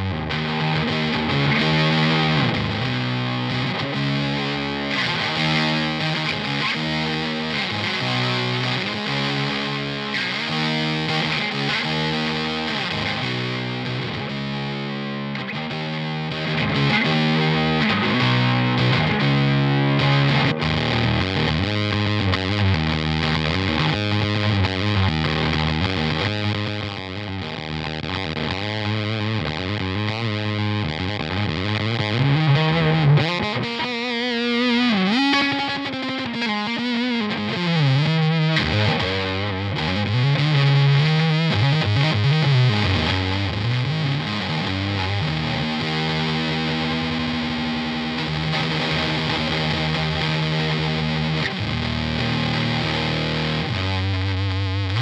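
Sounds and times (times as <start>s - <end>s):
fuzz distorted electric guitar: 0.0s - 55.0s.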